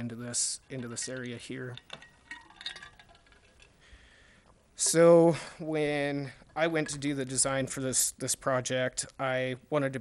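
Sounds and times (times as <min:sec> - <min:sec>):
faint light clicks and clinks: 0:00.3 - 0:05.0.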